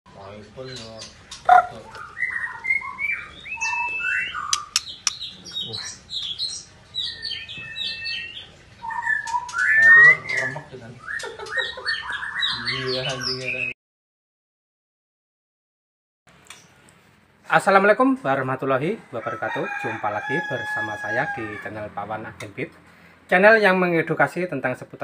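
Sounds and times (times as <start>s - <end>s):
bird singing whistles and chirps: 1.9s - 13.8s.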